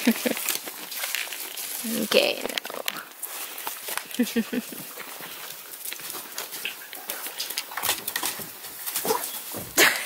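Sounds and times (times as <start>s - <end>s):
puppies scrambling clicks and scrapes: 0.0s - 9.8s.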